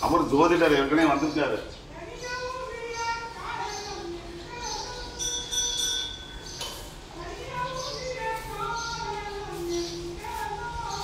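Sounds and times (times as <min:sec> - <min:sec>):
people talking: 0:00.0 - 0:06.0, 0:07.1 - 0:11.0
children's voices: 0:01.8 - 0:11.0.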